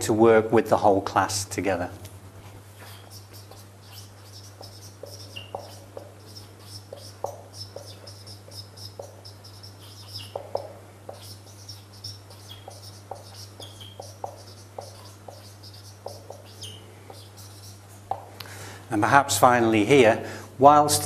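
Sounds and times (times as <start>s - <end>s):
marker squeaking on whiteboard: 2.8s - 18.3s.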